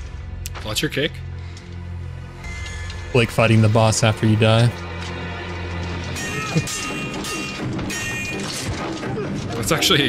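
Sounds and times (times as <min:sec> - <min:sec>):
dramatic soundtrack music: 0:00.0 - 0:10.0
steel swords clashing: 0:06.2 - 0:09.8.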